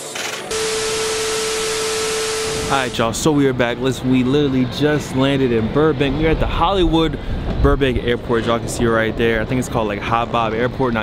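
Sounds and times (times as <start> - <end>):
constant humming tone: 0.5 - 3.2
man speaking: 2.6 - 3.8.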